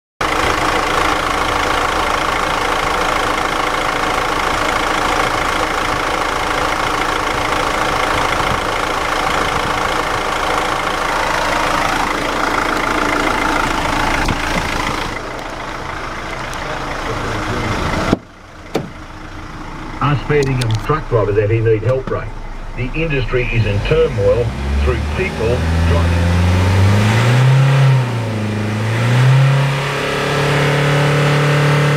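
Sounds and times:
diesel engine idling: 0.2 - 31.9.

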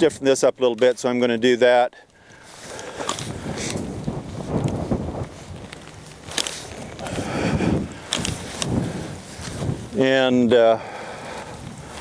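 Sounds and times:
pruning shears snipping: 2.3 - 3.9
wind rumbling on microphone: 2.3 - 12.0.

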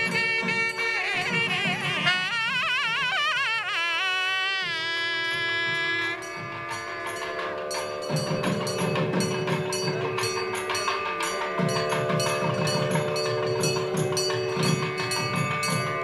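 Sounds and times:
drumming: 0.0 - 16.0
temple bells ringing: 5.3 - 16.0.

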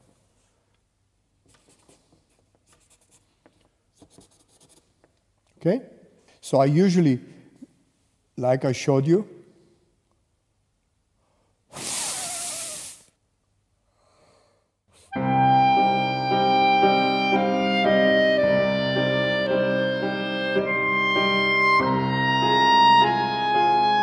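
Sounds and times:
hard blow of air: 11.7 - 13.1
clarinet playing slow melody: 15.1 - 24.0
piano accompaniment: 15.2 - 24.0.

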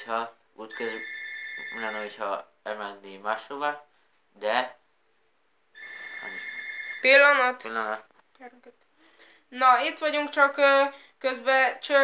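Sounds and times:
telephone ringing: 0.7 - 2.2, 5.8 - 7.3.

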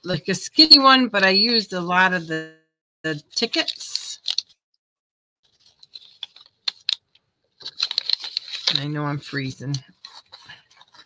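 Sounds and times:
paper rustling and pages flipping: 3.4 - 4.6, 5.4 - 11.0.

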